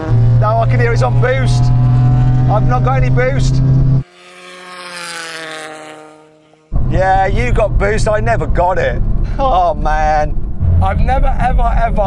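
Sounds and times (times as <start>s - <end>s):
car engine passing at full throttle: 0.0s - 9.2s.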